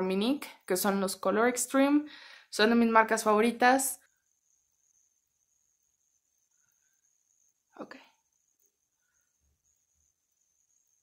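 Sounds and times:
faint high-pitched whine: 0.0 - 11.0.

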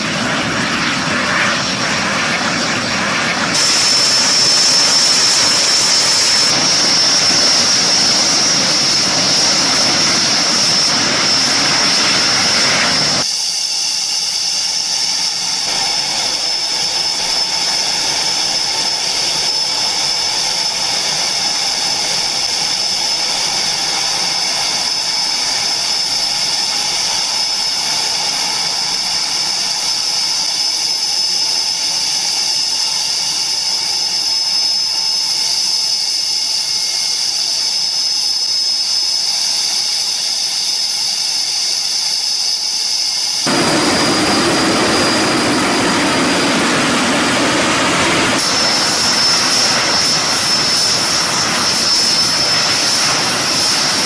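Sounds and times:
turbojet engine roaring: 0.0 - 54.0.

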